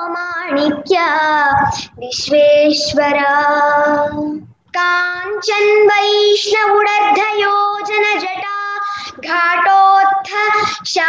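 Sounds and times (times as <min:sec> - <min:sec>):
girl singing a long note: 0:00.0 - 0:11.0.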